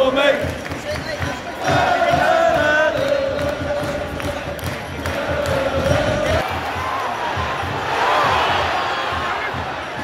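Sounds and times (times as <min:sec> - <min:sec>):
stadium crowd roaring and shouting: 0:00.0 - 0:10.0.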